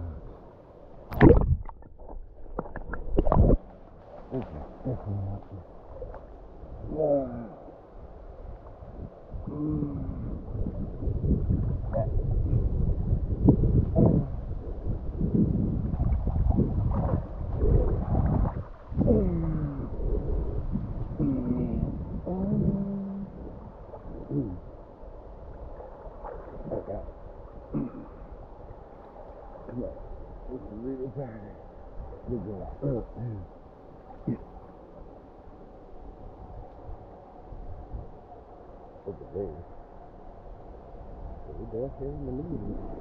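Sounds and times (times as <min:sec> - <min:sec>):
low rumbling: 0:00.0 - 0:43.0
river water sloshing and gurgling: 0:00.1 - 0:09.5, 0:10.1 - 0:22.3, 0:23.0 - 0:30.8.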